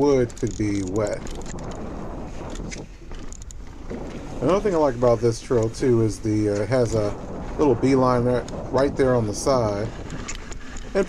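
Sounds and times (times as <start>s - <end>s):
bike clicks and rattles: 0.0s - 4.4s, 9.8s - 11.0s
tyres rumbling on dirt: 0.0s - 11.0s
wind on microphone: 0.0s - 11.0s.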